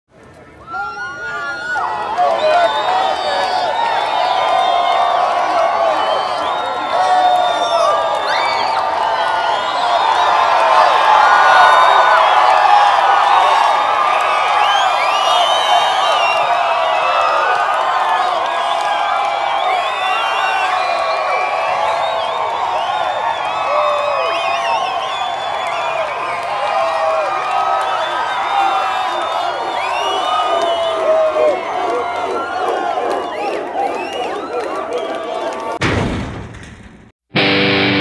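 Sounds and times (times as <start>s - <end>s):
crowd babble: 0.1s - 4.3s, 27.5s - 35.8s.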